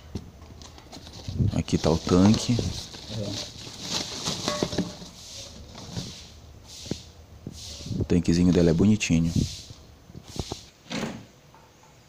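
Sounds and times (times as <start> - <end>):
bubble wrap rustling: 0.6 - 8.8.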